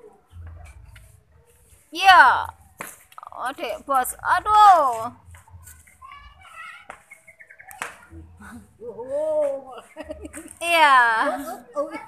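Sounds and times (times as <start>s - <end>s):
children calling out: 5.8s - 7.1s.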